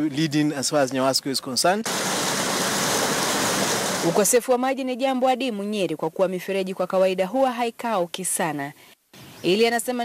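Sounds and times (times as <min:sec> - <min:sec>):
water gushing into channel: 0:01.9 - 0:04.3.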